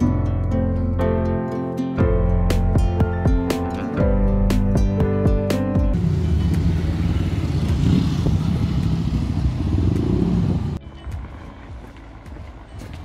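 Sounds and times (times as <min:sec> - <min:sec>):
background music: 0:00.0 - 0:08.9, 0:09.5 - 0:13.0
bus engine and road noise: 0:00.0 - 0:13.0.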